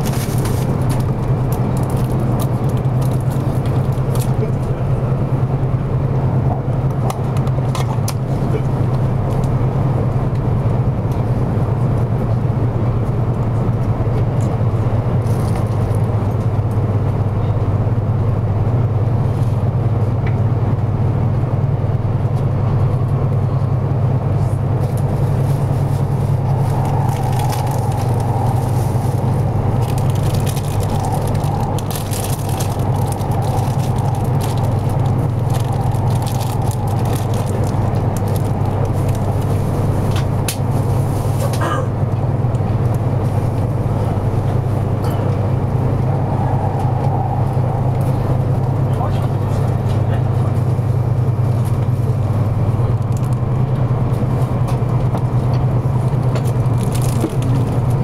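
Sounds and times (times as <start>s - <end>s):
train cabin rumble and hum: 0.0s - 58.0s.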